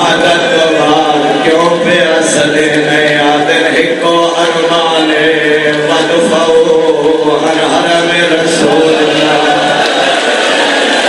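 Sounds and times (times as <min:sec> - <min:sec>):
man chanting a lament: 0:00.0 - 0:09.9.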